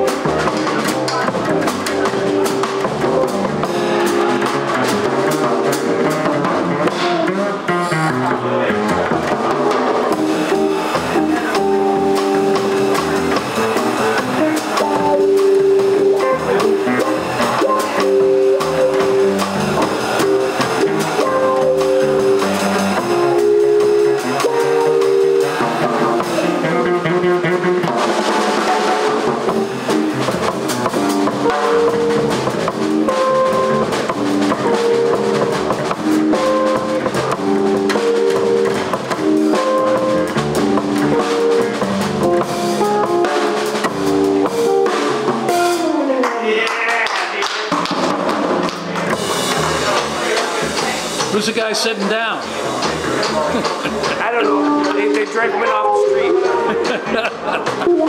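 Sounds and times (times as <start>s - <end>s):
electric guitar: 0.0s - 46.9s, 52.4s - 58.0s
drum kit: 0.0s - 58.0s
walking upright bass: 0.0s - 58.0s.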